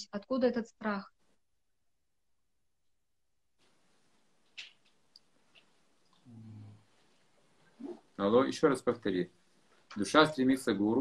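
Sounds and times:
person speaking: 9.9 - 11.0.

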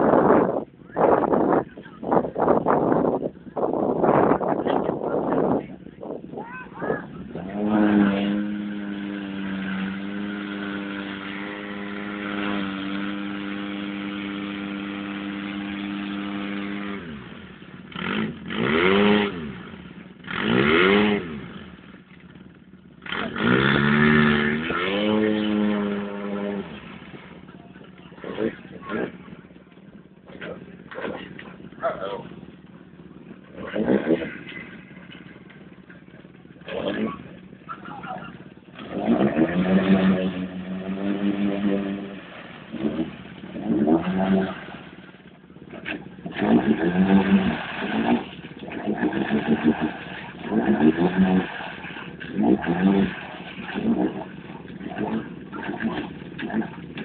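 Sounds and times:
engine revving: 6.7 - 57.0.

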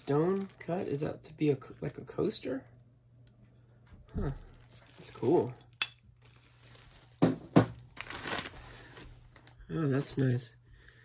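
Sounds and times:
plastic bag and paper crinkling: 0.0 - 2.0, 4.2 - 10.4.

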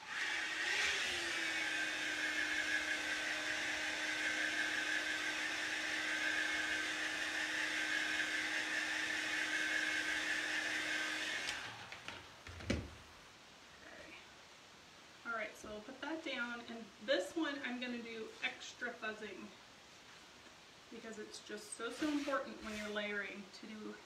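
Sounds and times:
heat gun blowing: 0.0 - 12.2, 21.8 - 23.0.

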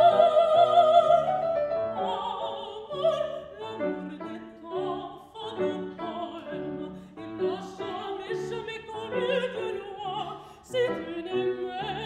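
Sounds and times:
grand piano: 0.0 - 12.0
woman singing opera: 0.0 - 12.0.

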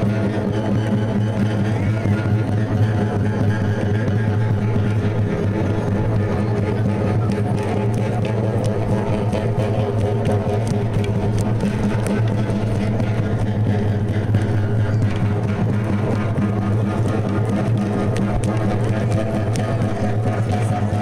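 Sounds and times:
frame drums: 0.0 - 21.0
steady low drone: 0.0 - 21.0.

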